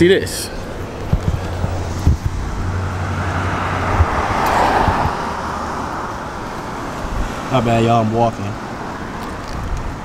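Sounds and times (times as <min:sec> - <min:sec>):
low traffic rumble: 0:00.0 - 0:10.0
car passing: 0:00.2 - 0:10.0
camera handling thumps: 0:01.0 - 0:02.4.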